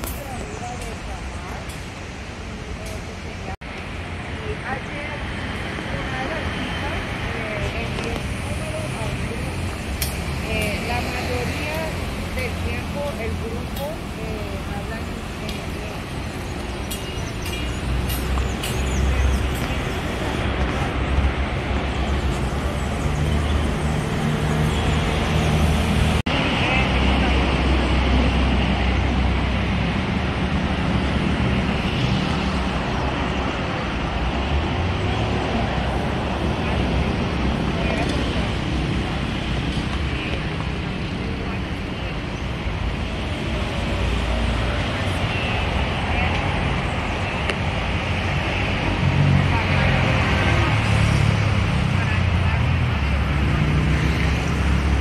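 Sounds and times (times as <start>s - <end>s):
cars going by on a street: 0.0s - 55.0s
distant indistinct voices: 0.0s - 55.0s
road traffic rumble: 0.0s - 55.0s.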